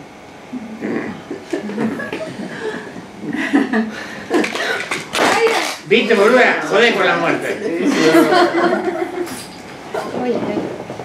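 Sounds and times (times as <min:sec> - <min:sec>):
woman laughing: 0:00.8 - 0:04.9, 0:07.9 - 0:10.1.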